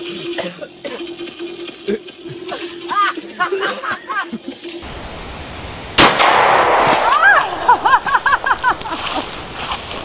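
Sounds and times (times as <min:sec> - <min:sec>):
rifle gunshot: 0:06.0 - 0:07.2.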